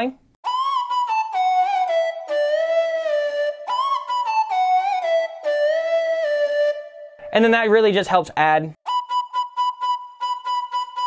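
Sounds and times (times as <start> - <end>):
pulsing synthesized flute-like lead: 0.5 - 7.3, 8.9 - 11.0.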